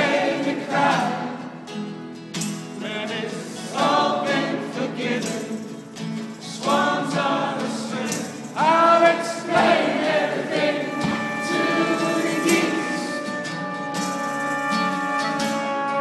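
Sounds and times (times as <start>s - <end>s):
many voices singing together: 0.0s - 1.6s, 2.8s - 13.7s
acoustic guitar: 0.0s - 16.0s
strings: 3.7s - 16.0s.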